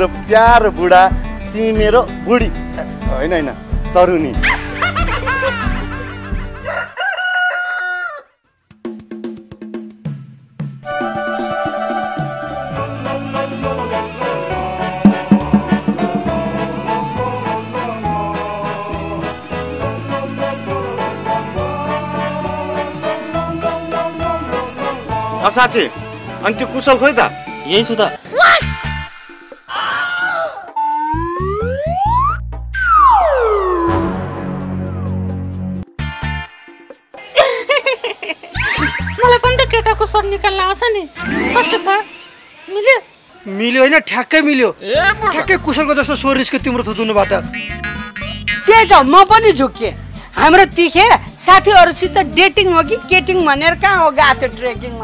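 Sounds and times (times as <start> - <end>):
deep bass thumps: 0.0 - 6.6, 15.0 - 17.7
background music with a beat: 0.0 - 6.7, 8.7 - 26.4, 28.7 - 40.7
rooster crowing: 6.6 - 8.4
synthesized tone sliding upward: 30.8 - 34.2, 41.2 - 42.7.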